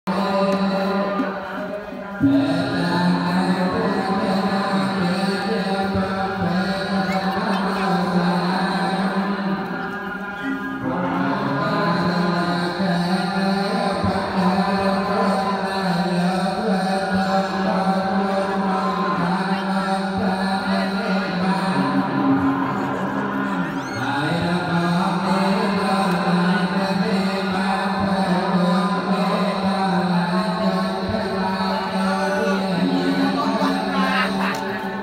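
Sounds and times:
droning chanting: 0:00.1 - 0:35.0.

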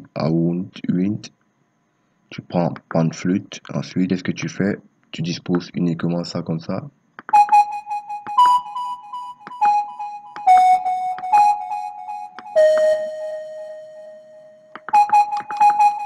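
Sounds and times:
synth flute melody: 0:07.3 - 0:16.0.

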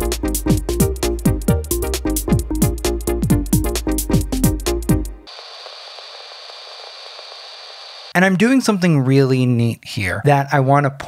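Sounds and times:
thin hiss: 0:05.3 - 0:08.1.

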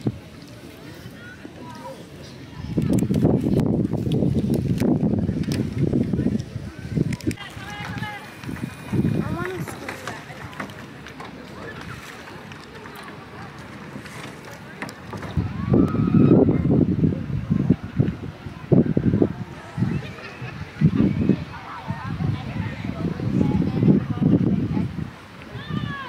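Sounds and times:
indistinct people talking: 0:00.0 - 0:26.0.

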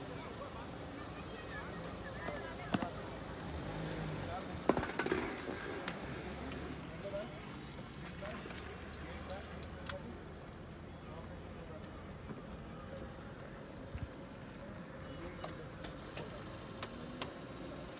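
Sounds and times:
steady outdoor hum: 0:00.0 - 0:17.9.

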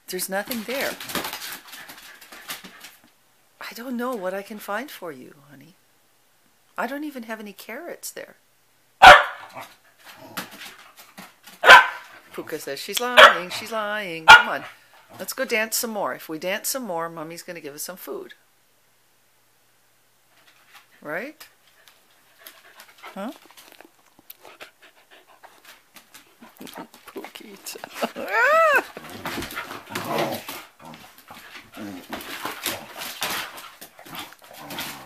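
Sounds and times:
dogs scuffling: 0:00.4 - 0:03.2, 0:21.6 - 0:35.0
dog barking: 0:09.0 - 0:09.6, 0:11.6 - 0:12.0, 0:13.2 - 0:13.5, 0:14.3 - 0:14.7.

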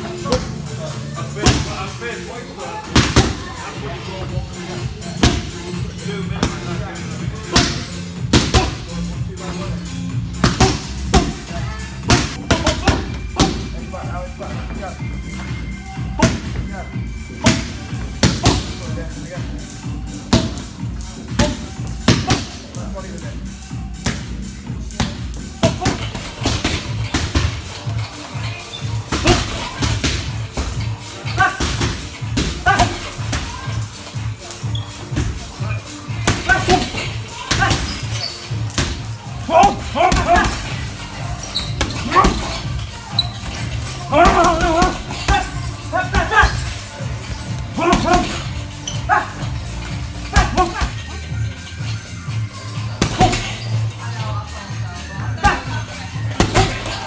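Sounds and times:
music playing: 0:00.0 - 0:57.0
boxing gloves punching: 0:29.0 - 0:30.8, 0:38.7 - 0:42.8, 0:43.6 - 0:46.7, 0:47.8 - 0:51.0, 0:53.0 - 0:53.6, 0:56.4 - 0:57.0.

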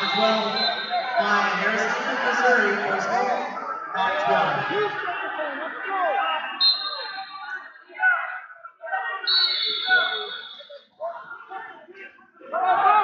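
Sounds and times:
referee's whistle blasts: 0:00.0 - 0:01.6, 0:06.5 - 0:07.6, 0:09.2 - 0:10.8
voices echoing in a hall: 0:00.0 - 0:13.0.

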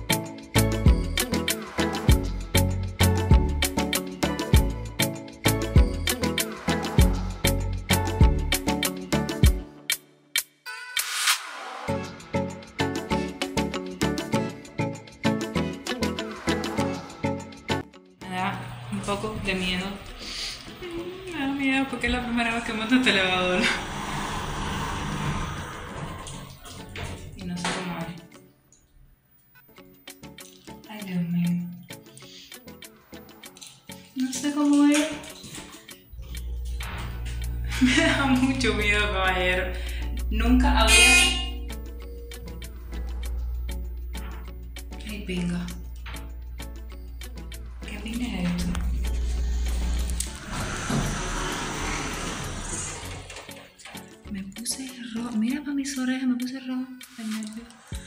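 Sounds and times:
elevator doors opening: 0:21.8 - 0:27.9, 0:47.7 - 0:54.2
elevator humming: 0:36.1 - 0:53.8.

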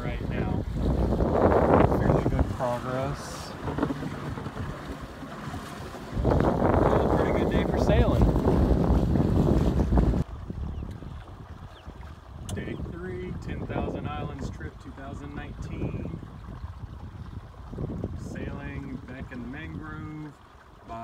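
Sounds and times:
wind on the microphone: 0:00.0 - 0:20.3
water rushing past a hull: 0:00.0 - 0:21.0.

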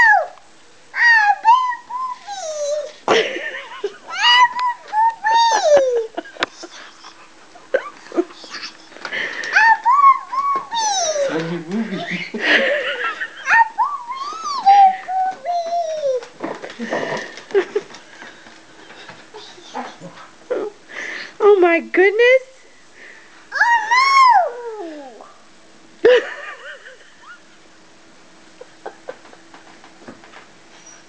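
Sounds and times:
toddler vocalizing: 0:01.0 - 0:03.0, 0:04.1 - 0:06.1, 0:09.5 - 0:11.7, 0:13.5 - 0:16.3, 0:23.5 - 0:25.4.

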